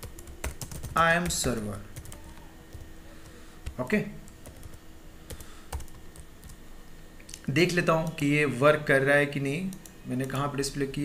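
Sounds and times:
computer keyboard keystrokes: 0.1 - 2.8.

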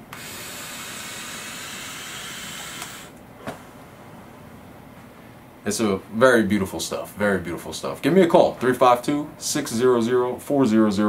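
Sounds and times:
vape airy hiss: 0.0 - 3.2.

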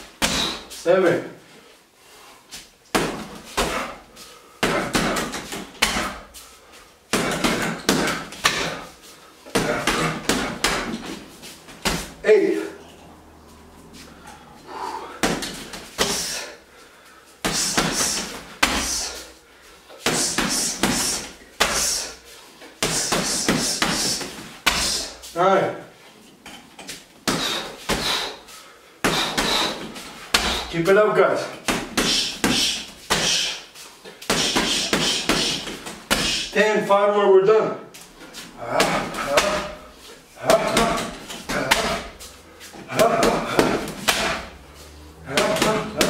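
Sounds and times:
gloves punching heavy bag: 0.0 - 0.7, 2.9 - 6.3, 7.1 - 12.2, 15.2 - 16.5, 17.4 - 19.3, 20.0 - 22.2, 22.8 - 25.2, 27.2 - 28.4, 29.0 - 30.8, 31.5 - 33.6, 34.2 - 36.6, 38.4 - 44.6, 45.2 - 46.0.

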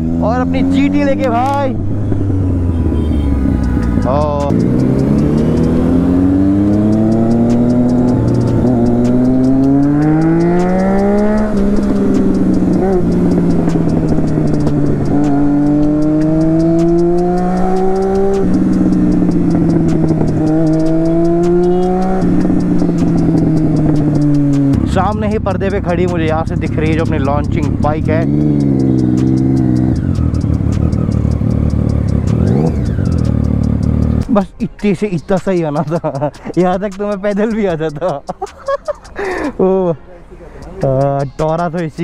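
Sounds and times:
motorcycle engine under way: 0.0 - 34.3.

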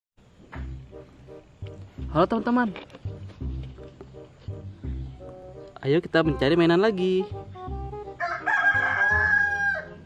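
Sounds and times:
rooster crowing: 8.2 - 10.0.

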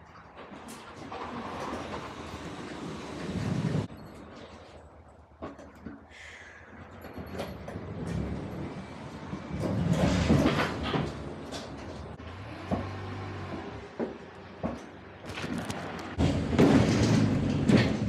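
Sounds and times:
pallet jack rolling over wooden floor: 0.4 - 3.9, 7.5 - 18.0.

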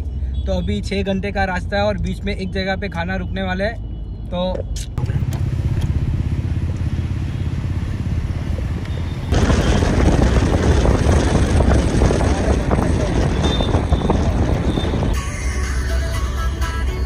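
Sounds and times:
traffic noise inside moving car: 0.0 - 17.0.

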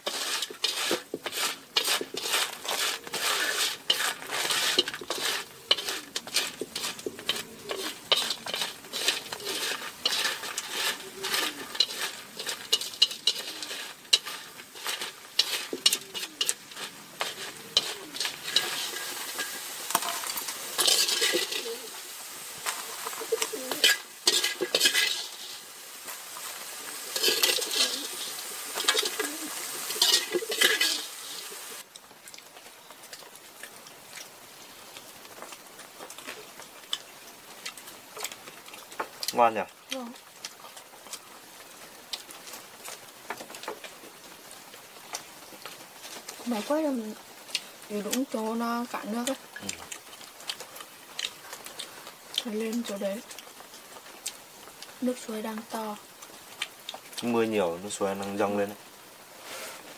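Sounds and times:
scraping against pan: 0.0 - 22.0, 22.6 - 25.7, 26.4 - 31.8, 59.4 - 59.9
crabs sizzling in oil: 0.0 - 59.9.

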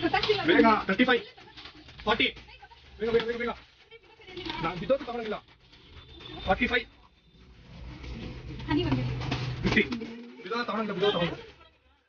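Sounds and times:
shop background noise: 0.0 - 12.0.

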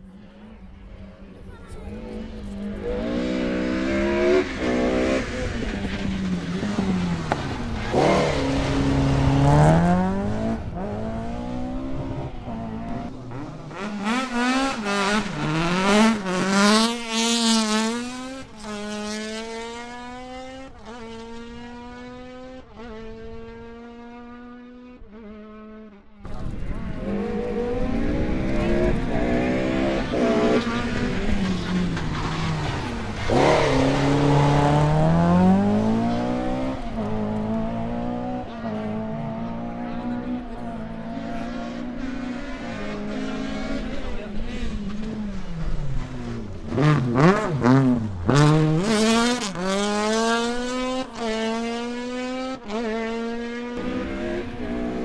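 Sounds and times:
rally car engines revving: 0.0 - 55.0
car accelerating through upshifts: 1.9 - 55.0.

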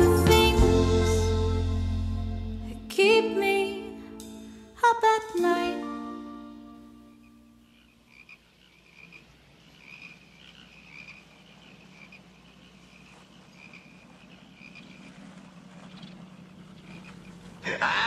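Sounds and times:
music: 0.0 - 7.5.

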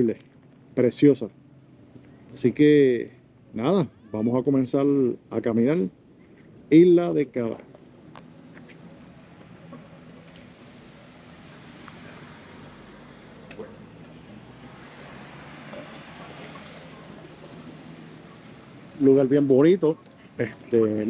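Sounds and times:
low engine hum: 0.0 - 21.0
wind: 0.0 - 21.0
surf: 6.8 - 21.0.

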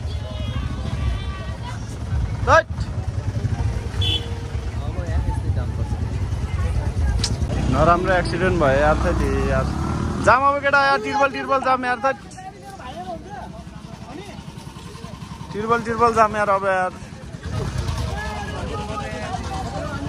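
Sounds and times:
motorcycle engine idling: 0.0 - 20.0.

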